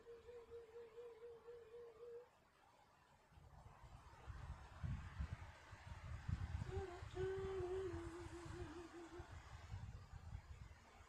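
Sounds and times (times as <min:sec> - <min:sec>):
person humming: 0:00.0 - 0:02.2, 0:06.7 - 0:09.3.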